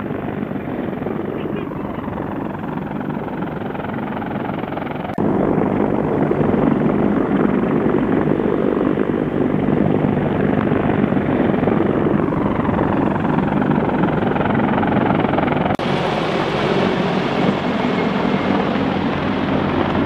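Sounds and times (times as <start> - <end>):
tiltrotor aircraft rotor and engine noise: 0.0 - 20.0.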